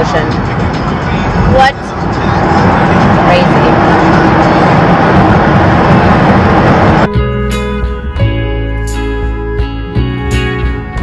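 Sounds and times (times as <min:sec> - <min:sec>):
road and tyre noise in tunnel: 0:00.0 - 0:07.1
guitar music: 0:06.7 - 0:11.0.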